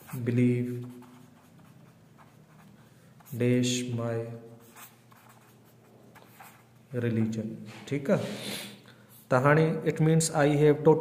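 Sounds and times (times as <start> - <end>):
pen scratching on paper: 0.0 - 3.4, 4.5 - 6.8.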